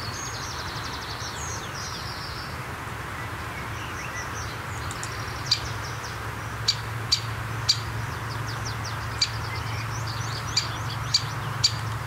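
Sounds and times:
songbirds chirping: 0.0s - 12.0s.

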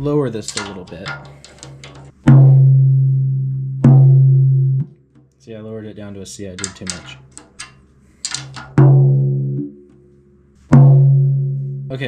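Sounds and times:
drum struck with felt mallet: 2.2s - 4.9s, 8.6s - 9.8s, 10.7s - 12.0s.

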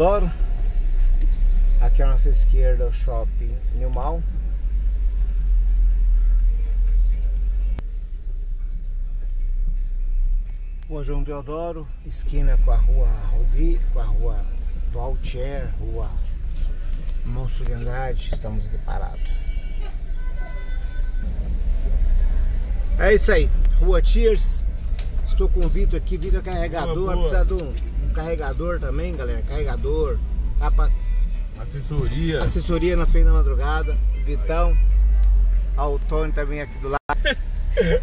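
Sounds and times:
road noise: 0.0s - 38.0s
van engine rumble: 0.0s - 38.0s.

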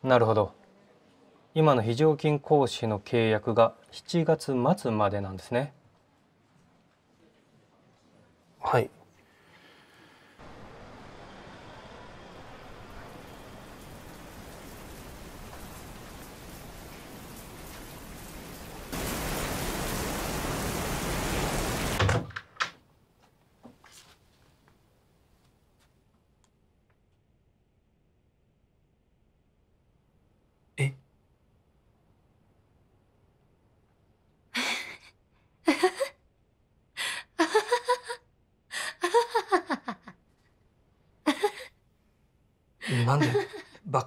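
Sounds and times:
rain hissing: 9.9s - 22.2s, 42.8s - 43.7s
woman laughing: 34.6s - 36.2s, 37.0s - 40.2s, 41.3s - 41.7s, 42.8s - 43.8s.

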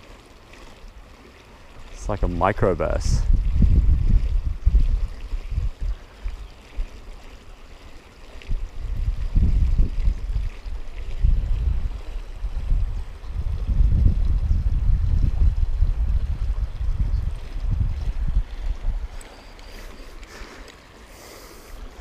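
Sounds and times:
wind buffeting microphone: 1.7s - 7.6s, 8.2s - 20.5s.

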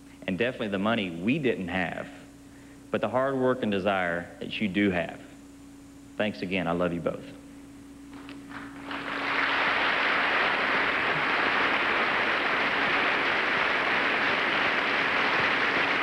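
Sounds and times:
audience applauding: 8.5s - 16.0s.

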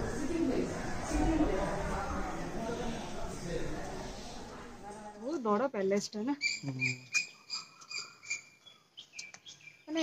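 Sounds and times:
small animal chirping: 6.4s - 9.8s.

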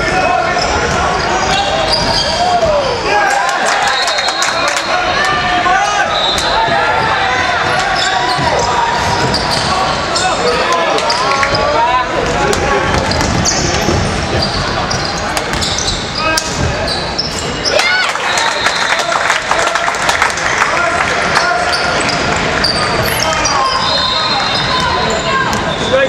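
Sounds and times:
sneakers squeaking: 0.1s - 3.1s, 3.8s - 17.9s, 21.6s - 26.0s.

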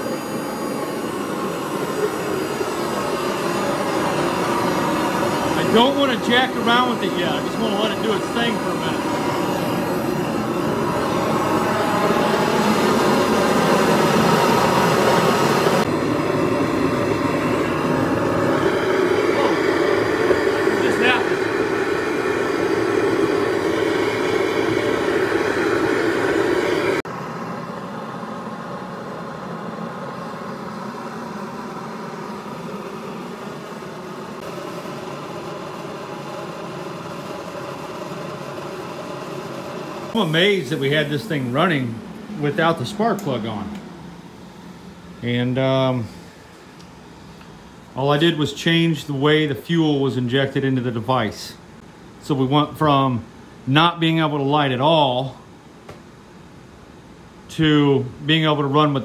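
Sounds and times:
burner combustion roar: 0.0s - 55.4s.

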